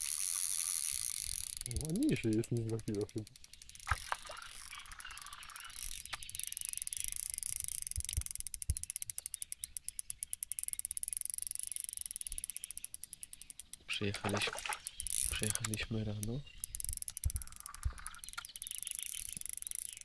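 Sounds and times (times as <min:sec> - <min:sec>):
fishing reel ticking: 0:00.0 - 0:20.0.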